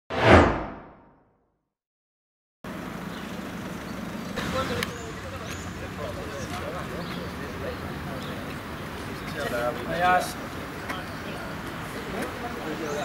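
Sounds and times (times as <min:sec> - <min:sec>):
swoosh sweeping down: 0:00.1 - 0:01.1
outdoor background noise: 0:02.6 - 0:13.0
faint voices: 0:04.4 - 0:13.0.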